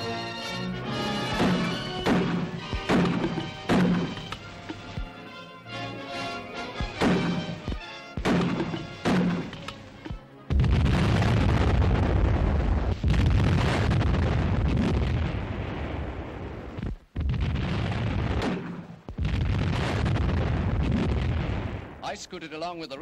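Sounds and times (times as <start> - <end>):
gunfire: 1.2 - 4.4, 6.8 - 9.8, 17.2 - 21.9
explosions: 1.3 - 4.3, 6.9 - 7.6, 8.2 - 9.6, 10.5 - 22.1.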